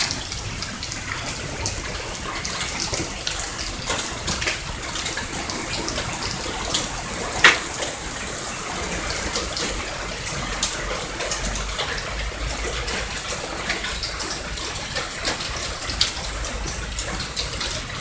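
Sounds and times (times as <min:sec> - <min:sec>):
heavy rain pouring: 0:00.0 - 0:18.0
runoff water splashing: 0:00.0 - 0:18.0.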